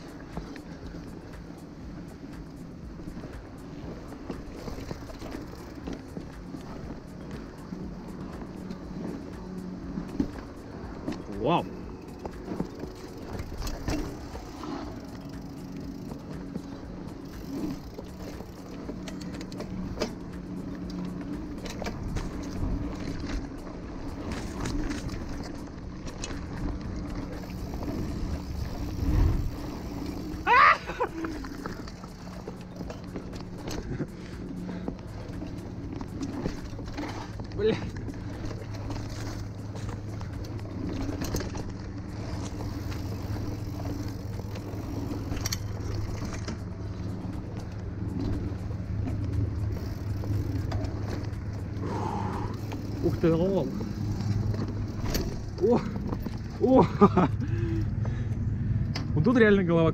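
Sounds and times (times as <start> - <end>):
bike clicks and rattles: 0.0 - 59.6
steady low hum: 0.0 - 59.9
bike tyres rumbling on dirt: 2.4 - 10.5, 11.2 - 58.4.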